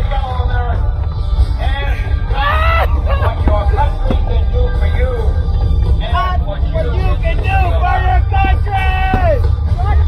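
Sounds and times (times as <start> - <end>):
music with singing: 0.0 - 10.0
voices: 6.0 - 10.0.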